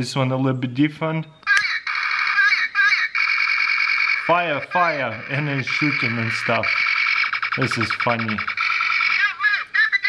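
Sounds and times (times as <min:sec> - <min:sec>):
tinny recorded voice calling: 0:01.4 - 0:10.0
electronic battle sound effect: 0:03.2 - 0:09.3.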